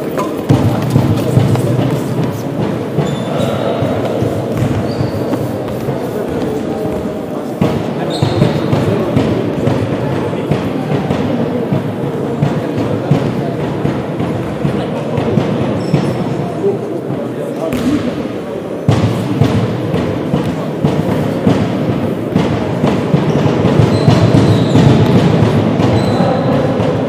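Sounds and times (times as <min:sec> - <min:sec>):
thuds: 0:00.0 - 0:11.2
many voices talking: 0:00.0 - 0:27.0.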